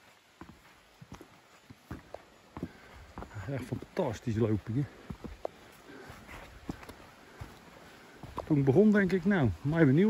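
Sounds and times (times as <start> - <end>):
footsteps on leaves and earth: 0.0 - 10.0.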